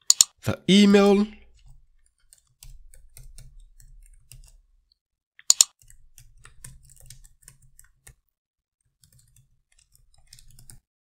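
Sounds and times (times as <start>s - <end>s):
typing on a keyboard: 1.6s - 4.6s, 5.4s - 10.9s.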